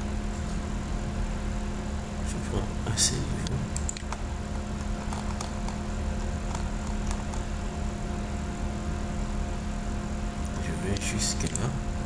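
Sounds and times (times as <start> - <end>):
electrical hum and hiss: 0.0 - 12.0
mouse clicks: 4.8 - 5.8, 6.5 - 7.4.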